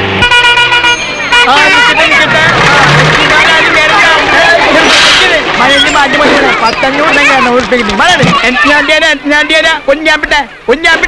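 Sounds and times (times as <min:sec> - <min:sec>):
bus horn honking: 0:00.0 - 0:04.6
children shouting and chattering: 0:00.8 - 0:11.0.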